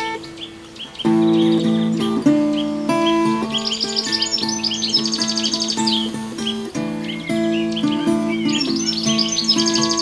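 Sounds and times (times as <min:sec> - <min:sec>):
fingerpicked acoustic guitar: 0:00.0 - 0:10.0
songbird chirping: 0:00.0 - 0:10.0.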